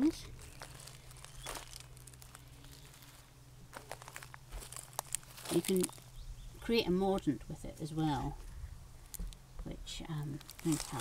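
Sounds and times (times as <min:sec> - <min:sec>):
faint rustling and crunches: 0:00.0 - 0:07.3, 0:08.1 - 0:11.0
low steady hum: 0:00.0 - 0:11.0.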